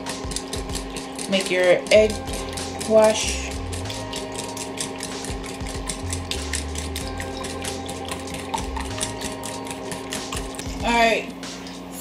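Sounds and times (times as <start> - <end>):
whisk beating eggs in metal bowl: 0.0 - 12.0.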